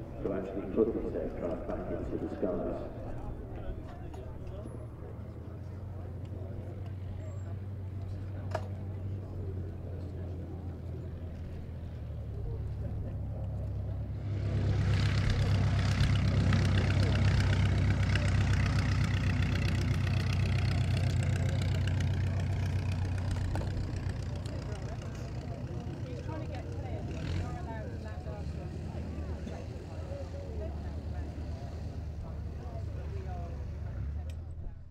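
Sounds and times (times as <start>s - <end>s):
aircraft engine and propeller: 0.0s - 34.9s.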